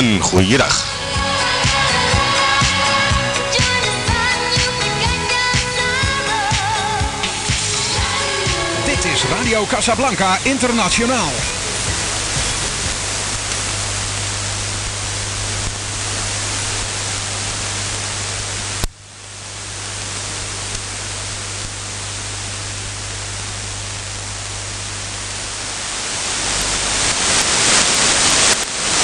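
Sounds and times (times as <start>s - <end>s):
radio static hiss: 0.0s - 29.0s
low steady hum: 6.8s - 28.8s.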